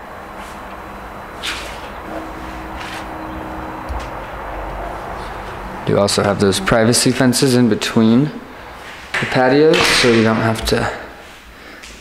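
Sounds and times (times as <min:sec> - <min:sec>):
outdoor background rumble: 0:00.0 - 0:09.0.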